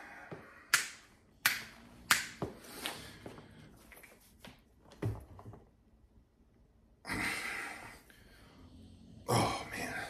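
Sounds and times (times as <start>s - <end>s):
sharp snapping clicks: 0.7s - 2.4s.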